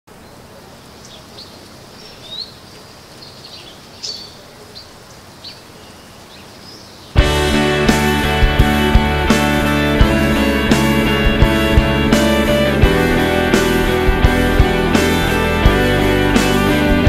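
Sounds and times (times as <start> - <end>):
birds chirping: 0.1 - 17.0
faint outdoor hiss: 0.1 - 17.0
rock band with guitars and drums: 7.2 - 17.0.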